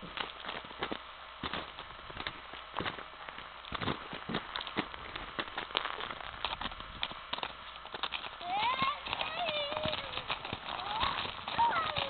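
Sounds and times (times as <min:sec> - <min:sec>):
footsteps crunching in wet snow: 0:00.0 - 0:12.0.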